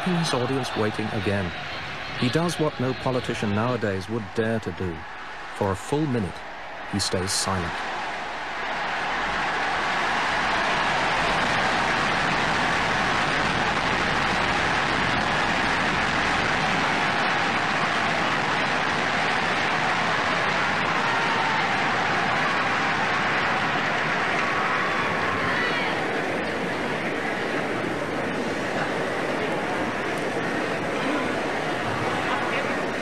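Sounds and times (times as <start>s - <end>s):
large crowd noise in a hall: 0.0s - 33.0s.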